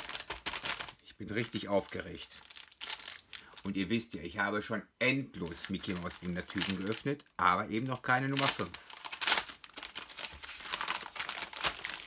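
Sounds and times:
plastic bag crinkling: 0.0 - 3.8, 5.4 - 12.0.

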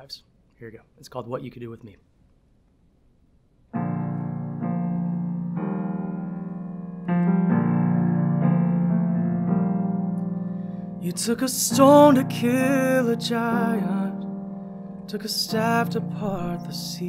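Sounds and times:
digital piano chords: 3.7 - 17.0.

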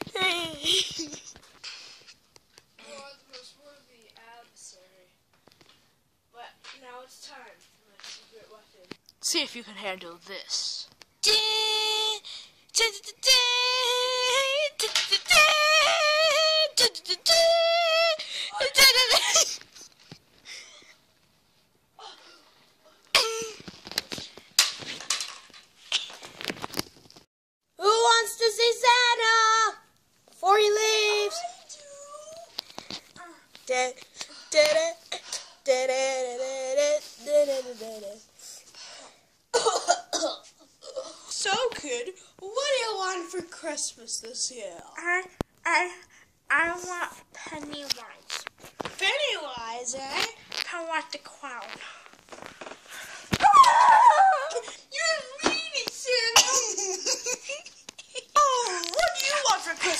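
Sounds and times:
child making vocal sounds: 11.2 - 19.6, 30.4 - 32.6, 33.2 - 38.3, 53.4 - 56.8
high-pitched voice singing: 12.8 - 18.2.

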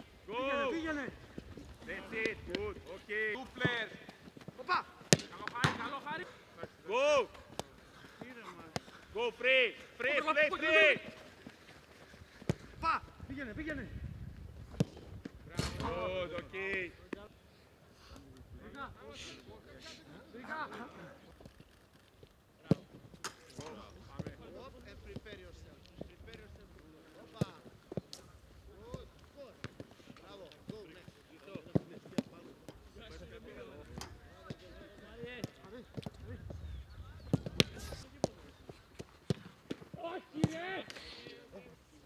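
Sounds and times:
players shouting: 4.6 - 7.6, 8.8 - 11.5.

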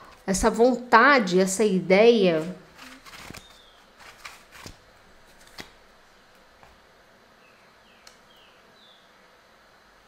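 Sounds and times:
cards being shuffled: 2.4 - 6.8.

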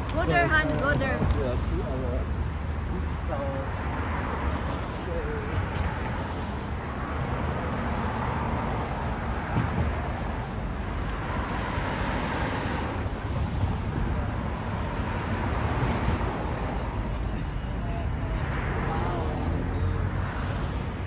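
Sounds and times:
cars passing on road: 0.0 - 21.0.

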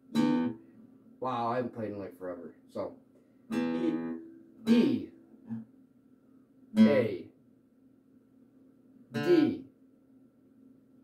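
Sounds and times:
acoustic guitar string plucked: 0.1 - 0.6, 3.5 - 5.7.

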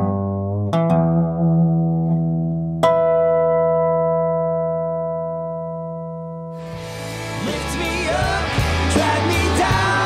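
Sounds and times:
resonator guitar chord ringing: 0.0 - 7.4
music: 0.0 - 10.0.

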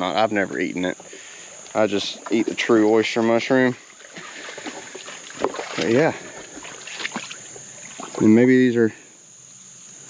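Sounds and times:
insects chirping: 0.0 - 10.0
water splashing around boots: 1.0 - 8.3.

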